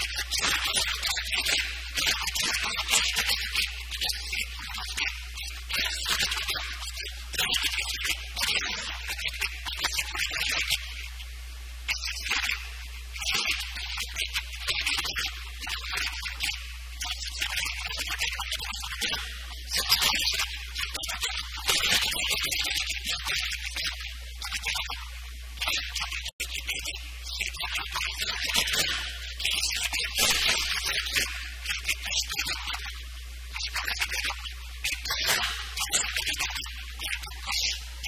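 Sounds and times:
steady low hum: 0.0s - 38.0s.

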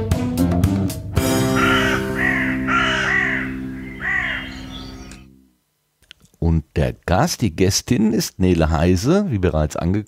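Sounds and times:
held music chord: 0.0s - 5.5s
crow cawing: 1.4s - 5.2s.

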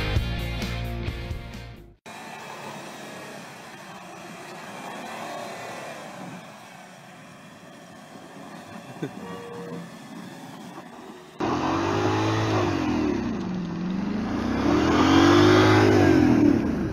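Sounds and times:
car engine under load: 2.0s - 16.9s
wheels spinning through snow: 2.1s - 16.9s.

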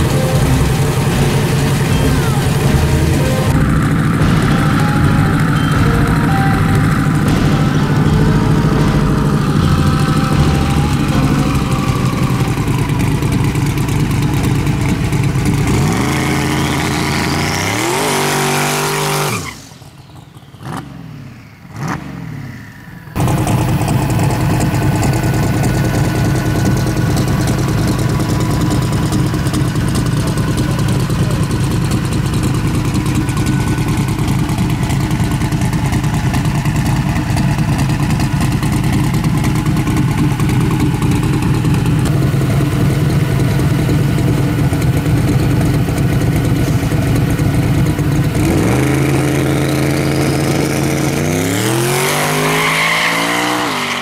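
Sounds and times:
pickup engine idling and revving: 0.0s - 54.0s.

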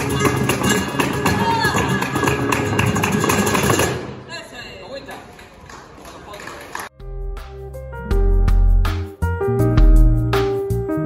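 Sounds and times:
cajon strikes: 0.0s - 4.1s
handclaps: 5.1s - 6.9s.

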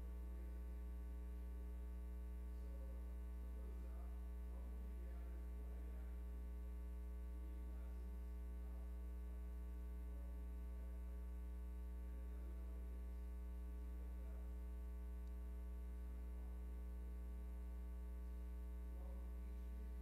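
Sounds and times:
electrical mains hum: 0.0s - 20.0s
faint room sound: 0.0s - 20.0s.

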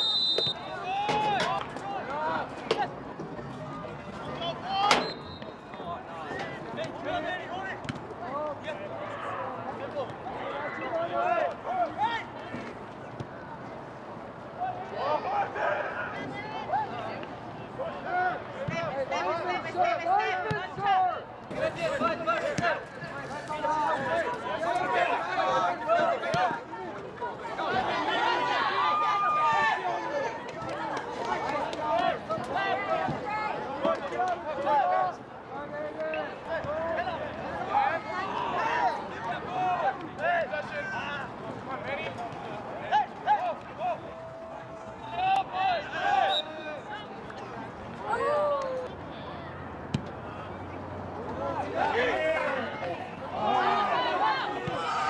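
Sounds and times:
players shouting: 0.0s - 3.0s, 14.6s - 55.0s.

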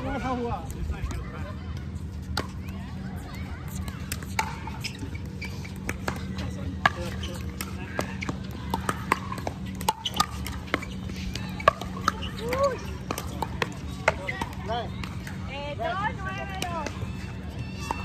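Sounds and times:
paddles hitting plastic ball: 3.6s - 15.4s.

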